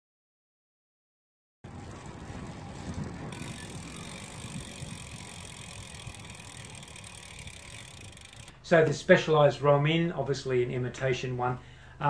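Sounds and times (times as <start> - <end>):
bicycle tyre and wind noise: 1.6 - 9.2.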